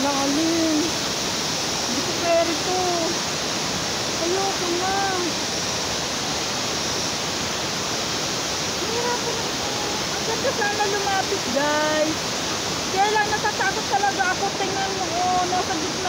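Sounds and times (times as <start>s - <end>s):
waterfall rushing: 0.0s - 16.0s.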